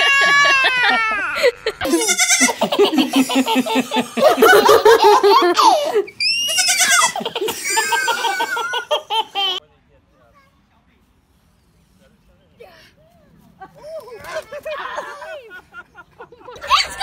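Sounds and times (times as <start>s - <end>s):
baby laughing: 0.0s - 9.6s
young goat bleating: 1.8s - 2.6s, 6.4s - 7.2s.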